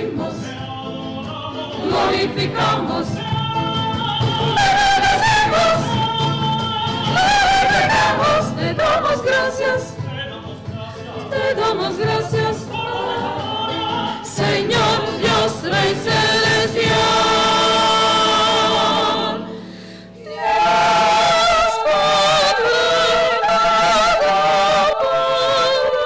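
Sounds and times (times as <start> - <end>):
mixed choir singing: 0.0 - 26.0.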